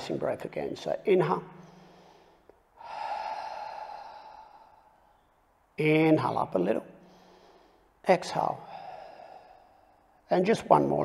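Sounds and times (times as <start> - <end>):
man breathing in deeply: 1.6 - 5.4, 7.0 - 8.0, 8.6 - 10.2.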